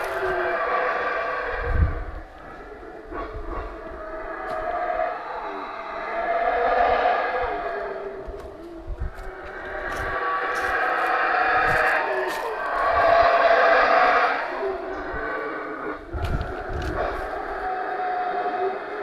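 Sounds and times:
howler monkeys howling: 0.0s - 19.0s.

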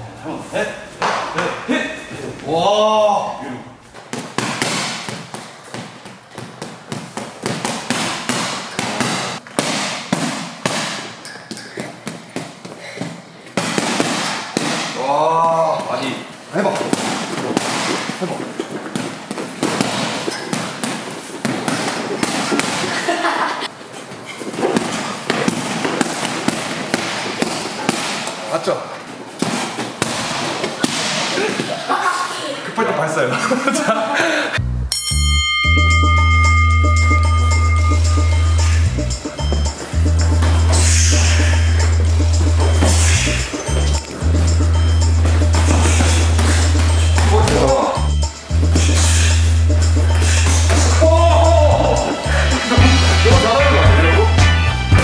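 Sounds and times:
boxing gloves hitting punching bag: 4.0s - 16.0s, 16.6s - 23.0s, 24.5s - 28.5s, 29.3s - 31.7s.

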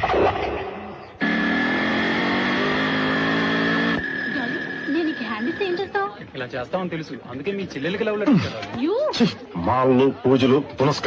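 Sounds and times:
vehicle engine running: 1.2s - 6.1s.

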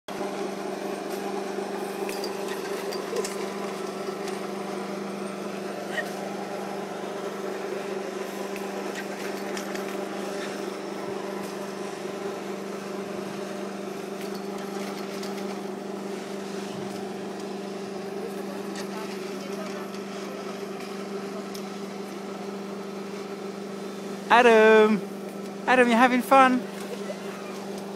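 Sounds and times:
low machine hum: 0.1s - 27.9s.

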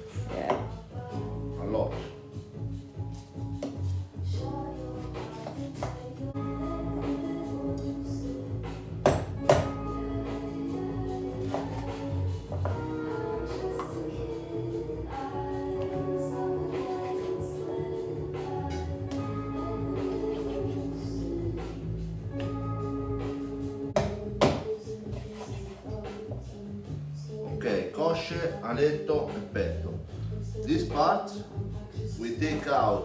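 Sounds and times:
instrumental music: 0.0s - 33.0s.

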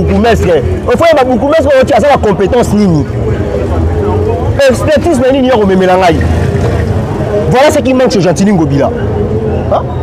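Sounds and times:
man talking: 0.0s - 6.4s, 7.4s - 9.0s.

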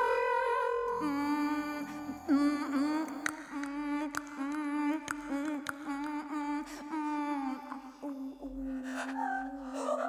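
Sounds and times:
woman humming low drone: 0.0s - 10.0s.

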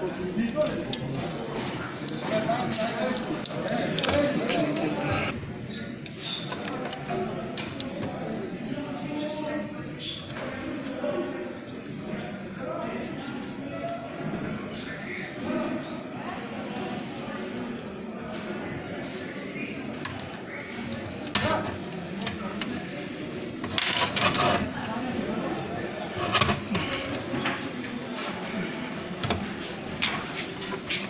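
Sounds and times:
indistinct voices talking: 0.0s - 31.0s.

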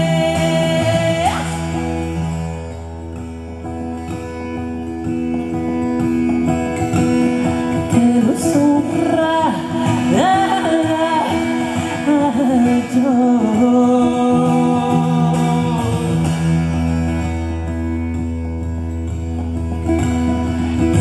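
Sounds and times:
woman singing: 0.0s - 2.2s, 7.7s - 16.7s
acoustic guitar playing: 0.0s - 21.0s.

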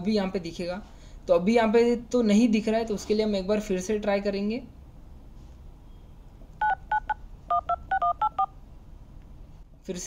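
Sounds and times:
touch-tone keypad beeps: 6.6s - 8.5s.

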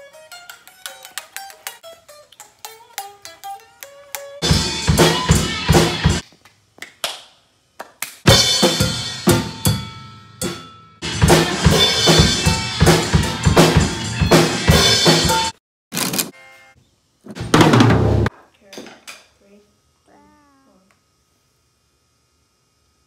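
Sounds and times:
drum kit played with sticks: 4.4s - 6.2s, 8.2s - 15.6s, 17.3s - 18.3s.

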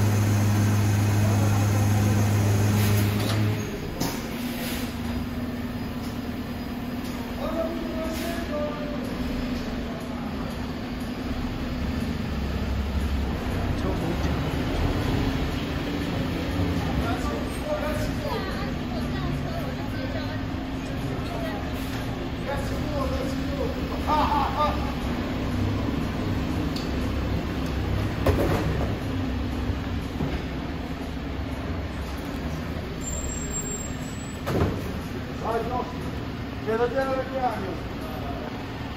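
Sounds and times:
garbage truck engine and hydraulics: 0.0s - 38.9s
brief metallic squeals: 33.0s - 34.5s
thump: 34.4s - 34.8s.

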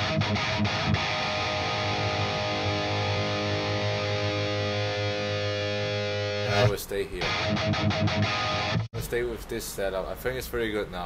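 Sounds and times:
electric guitar chord ringing: 0.0s - 8.9s.

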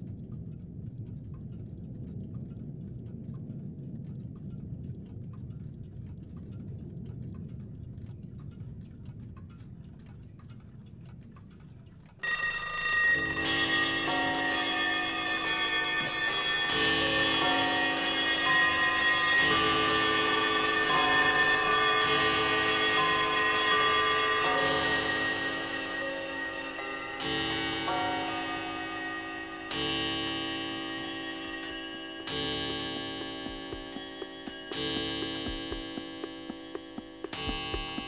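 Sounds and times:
clocks ticking: 0.1s - 38.0s
alarm clocks and bells ringing: 12.2s - 38.0s
low hum: 12.2s - 38.0s.

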